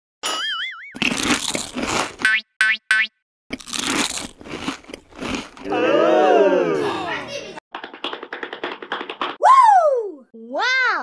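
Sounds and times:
cartoon boing sound effects: 0.2s - 1.0s
crunching and chewing chocolate: 1.0s - 2.2s, 3.5s - 5.8s.

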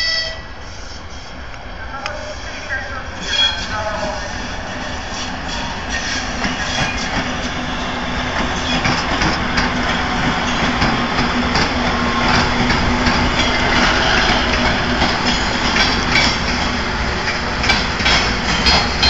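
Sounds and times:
diesel locomotive passing: 0.0s - 19.0s
train wheels clattering on rails: 3.2s - 19.0s.

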